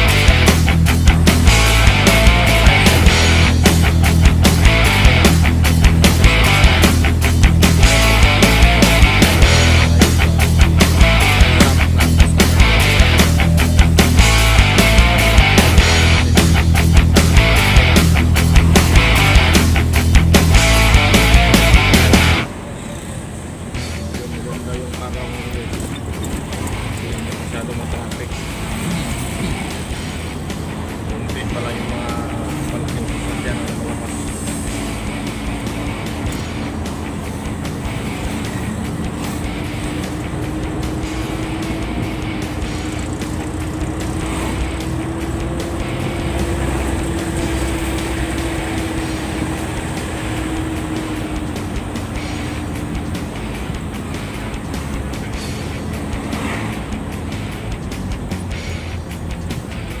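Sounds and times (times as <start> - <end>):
road rumble: 0.0 - 60.0
truck engine humming: 0.0 - 60.0.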